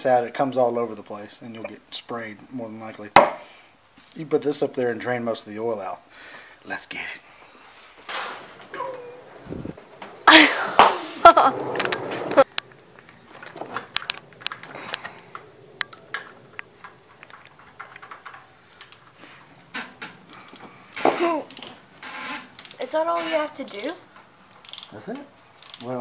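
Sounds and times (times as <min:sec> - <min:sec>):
tools clicking and knocking: 0:11.8 - 0:19.1.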